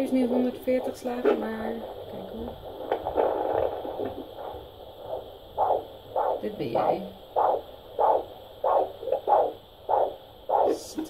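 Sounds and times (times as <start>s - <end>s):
heartbeat from doppler speaker: 0.0s - 10.9s.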